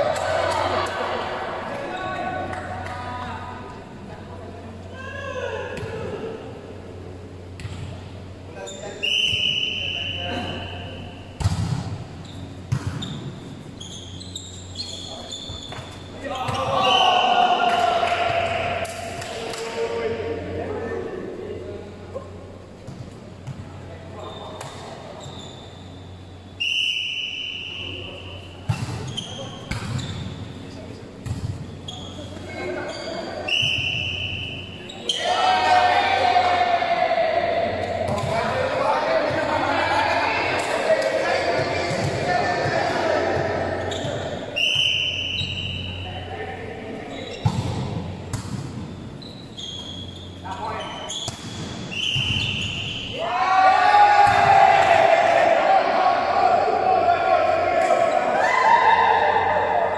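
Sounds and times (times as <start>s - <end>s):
shoe squeals: 8.6s - 11.2s, 12.2s - 17.6s, 24.2s - 30.8s, 31.6s - 35.4s, 43.8s - 46.3s, 47.1s - 47.6s, 48.9s - 53.4s
volleyball slaps: 11.4s - 12.0s, 12.7s - 13.0s, 17.6s - 19.8s, 29.7s - 30.0s, 31.2s - 31.6s, 37.8s - 38.5s, 47.4s - 48.8s, 51.2s - 52.6s, 54.2s - 55.4s
players shouting: 16.2s - 20.9s, 34.7s - 45.2s, 53.0s - 59.9s.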